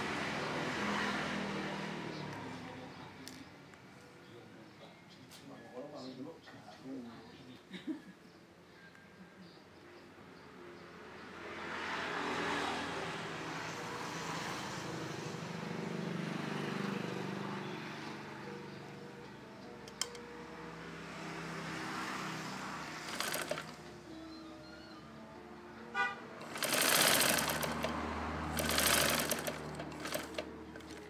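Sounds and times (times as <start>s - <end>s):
vehicle engine passing by: 0.0s - 3.2s, 11.2s - 19.3s, 20.3s - 31.0s
sharp click: 19.9s - 20.3s
rattle of clicks: 28.6s - 31.0s.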